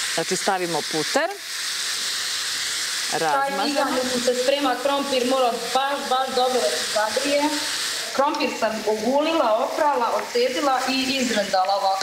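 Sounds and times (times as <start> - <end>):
butter sizzling in a frying pan: 0.0 - 12.0.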